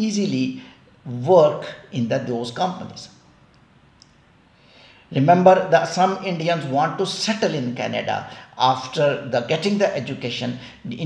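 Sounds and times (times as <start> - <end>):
soft intake of breath: 4.4 - 5.1.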